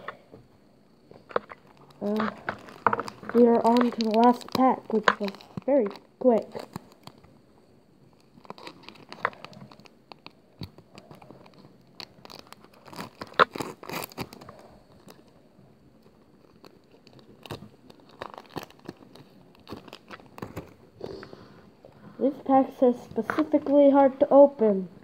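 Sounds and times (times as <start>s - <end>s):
foil wrapper crinkling and tearing: 1.2s - 7.4s, 8.1s - 21.0s
cards being handled: 1.3s - 7.1s.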